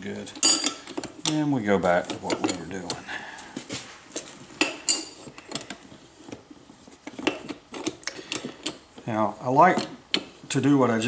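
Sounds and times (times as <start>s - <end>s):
tire levers scraping wheel rim: 0.2s - 3.0s, 4.1s - 11.0s.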